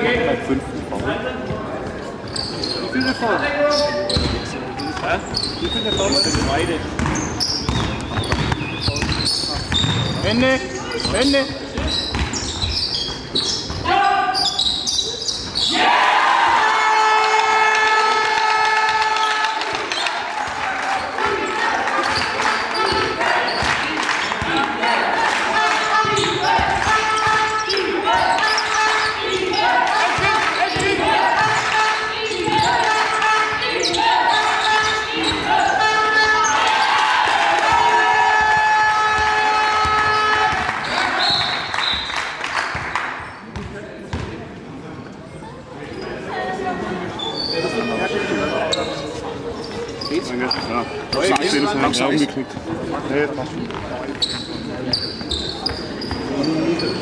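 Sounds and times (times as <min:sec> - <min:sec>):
basketball bouncing on floor: 0:04.2 - 0:04.4, 0:06.3 - 0:10.2, 0:11.8 - 0:13.8, 0:43.5 - 0:44.4
voices shouting in hall: 0:13.8 - 0:42.6, 0:46.3 - 0:52.0.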